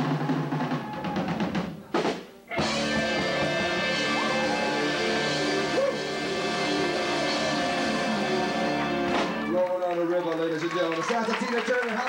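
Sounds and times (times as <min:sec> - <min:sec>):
live rock band playing: 0:00.0 - 0:09.7
audience voices: 0:02.5 - 0:12.0
audience applause: 0:03.0 - 0:06.0, 0:08.1 - 0:12.0.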